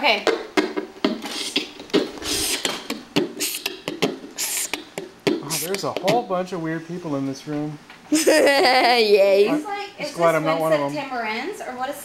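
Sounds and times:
boy beatboxing: 0.3 - 6.2.

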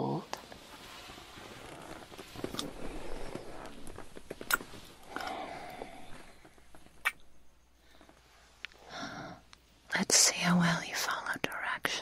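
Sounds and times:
short sharp mouth clicks: 7.0 - 7.2
woman whispering: 9.9 - 12.0.

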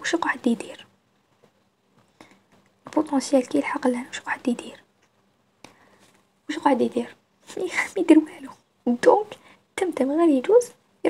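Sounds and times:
person speaking softly: 2.9 - 4.9, 6.5 - 10.8.

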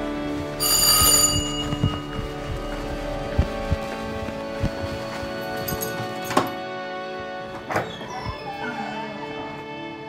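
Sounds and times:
background music: 0.0 - 10.0
bright bell-like chime: 0.6 - 3.0
soft low thuds: 1.3 - 5.8.

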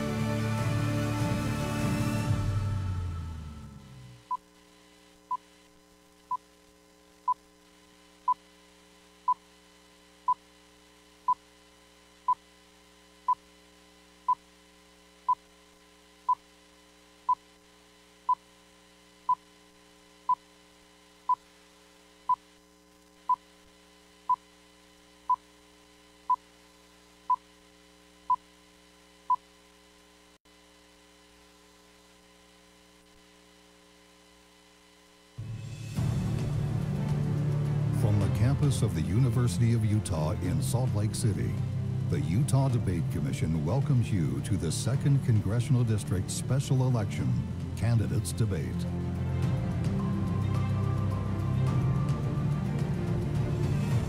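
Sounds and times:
faint electrical hum: 2.9 - 35.4.

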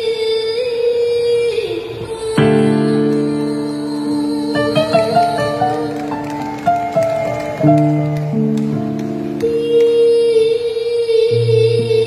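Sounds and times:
live band with keyboard and guitars: 2.4 - 10.2.

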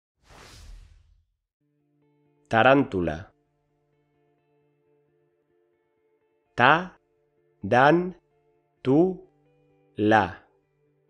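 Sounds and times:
whoosh: 0.2 - 1.3
faint steady musical chord: 1.6 - 11.0.

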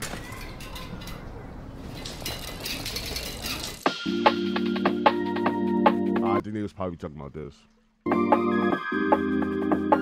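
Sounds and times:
bicycle wheel clicking: 1.8 - 3.9
music: 3.8 - 6.4, 8.0 - 10.0.

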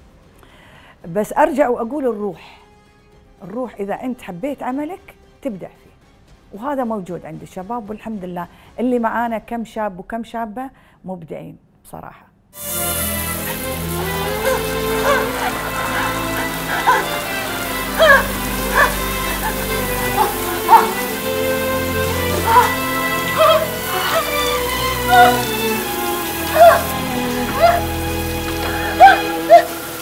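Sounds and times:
dramatic orchestral music: 12.6 - 30.0
shower running: 12.6 - 30.0.

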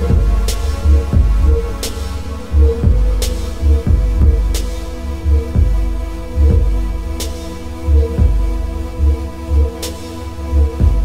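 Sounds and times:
pulsing electronic bass: 0.0 - 11.0
steady droning hum: 0.0 - 11.0.

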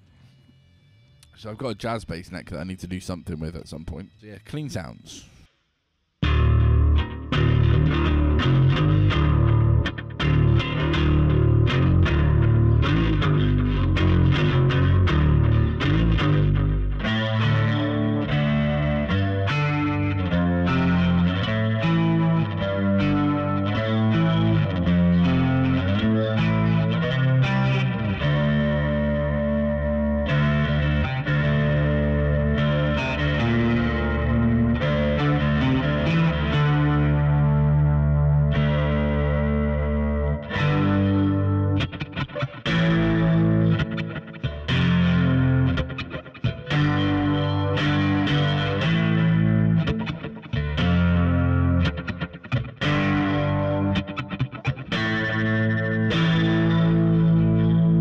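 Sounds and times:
bass guitar through amp: 6.2 - 58.0.

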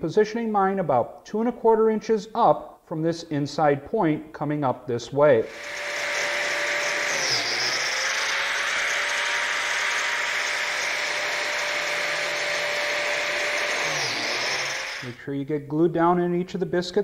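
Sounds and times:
biscuit joiner motor whine: 5.4 - 15.2.

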